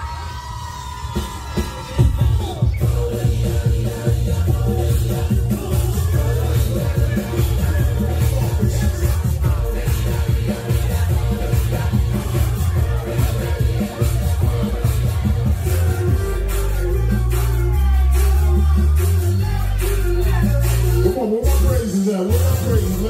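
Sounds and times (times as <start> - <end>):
dance music with heavy bass: 0.0 - 23.0.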